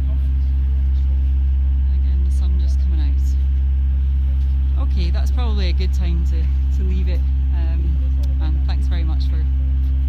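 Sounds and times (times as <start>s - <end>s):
low mechanical drone: 0.0s - 10.0s.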